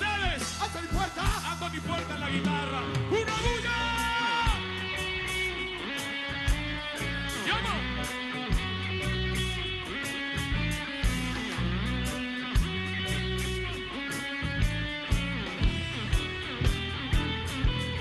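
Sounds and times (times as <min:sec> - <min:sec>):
bass guitar: 0:00.0 - 0:18.0
electric guitar: 0:00.0 - 0:18.0
steady reggae beat: 0:00.0 - 0:18.0.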